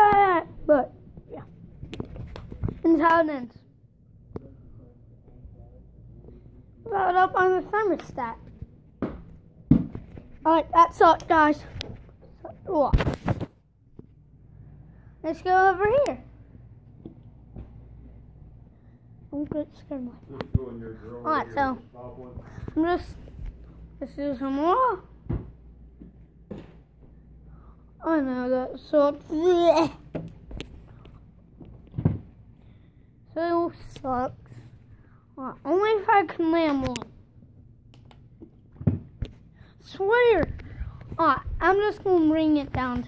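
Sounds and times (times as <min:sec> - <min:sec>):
low room hum: 0:00.0 - 0:43.0.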